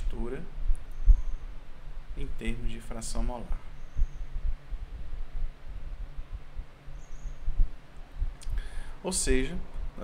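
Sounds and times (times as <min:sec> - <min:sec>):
microphone thumps and rumble: 0:00.0 - 0:08.7
faint hiss: 0:00.0 - 0:10.0
steady low hum: 0:00.0 - 0:10.0.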